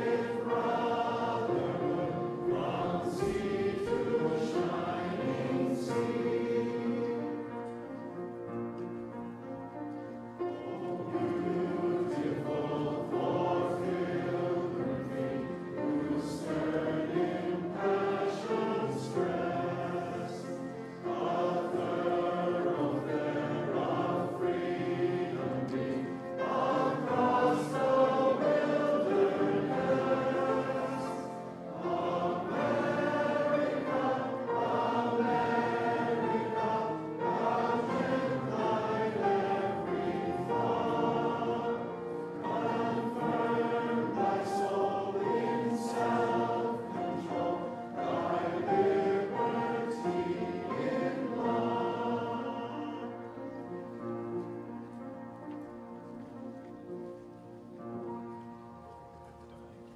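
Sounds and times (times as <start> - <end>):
audience singing an anthem: 0.0 - 7.7, 10.8 - 53.6.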